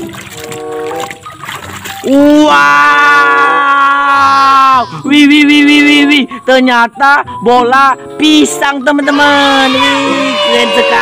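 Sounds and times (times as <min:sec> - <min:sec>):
water sloshing in plastic tub: 0:00.0 - 0:02.3
background music: 0:00.0 - 0:11.0.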